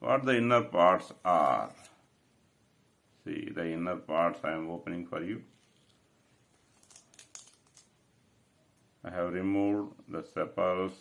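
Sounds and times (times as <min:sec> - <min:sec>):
faint crackles of flower tearing: 0:05.4 - 0:08.0.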